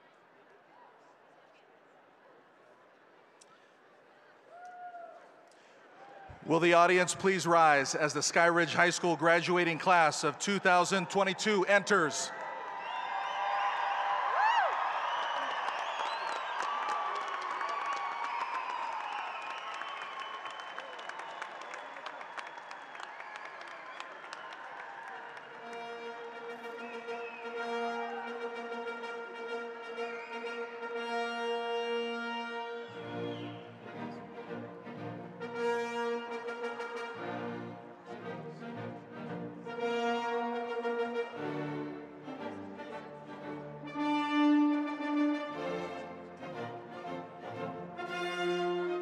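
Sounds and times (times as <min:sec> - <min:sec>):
crowd cheering and clapping: 0:04.5 - 0:31.0
brass band playing: 0:25.5 - 0:49.0.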